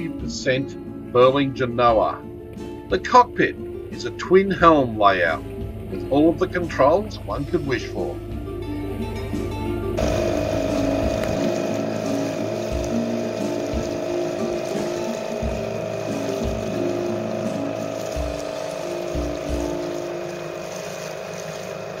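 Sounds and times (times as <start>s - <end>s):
diesel engine droning: 0.0s - 22.0s
water wash: 10.0s - 22.0s.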